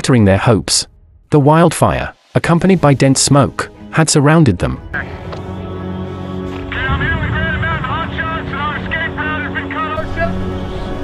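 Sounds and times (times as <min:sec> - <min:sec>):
steady low rumble: 0:06.7 - 0:09.2
man's voice over two-way radio: 0:06.7 - 0:10.3.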